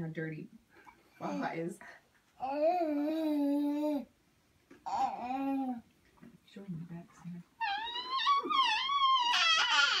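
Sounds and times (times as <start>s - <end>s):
toddler squealing: 7.6s - 10.0s.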